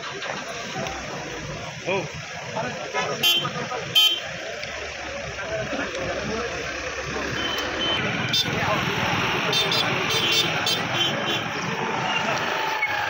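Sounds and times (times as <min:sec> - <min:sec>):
men talking at once: 0:01.8 - 0:11.0.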